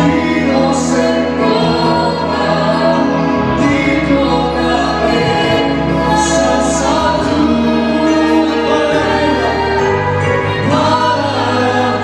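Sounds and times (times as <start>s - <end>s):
congregation singing: 0.0s - 12.0s
instrumental backing: 0.0s - 12.0s.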